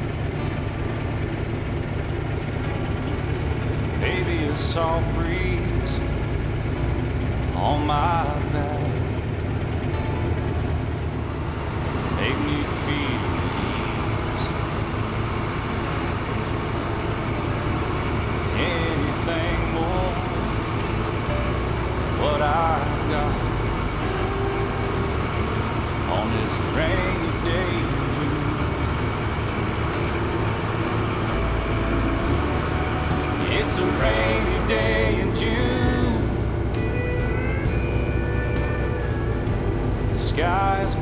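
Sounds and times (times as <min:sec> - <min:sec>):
ship engine rumble: 0:00.0 - 0:41.0
voices: 0:00.0 - 0:41.0.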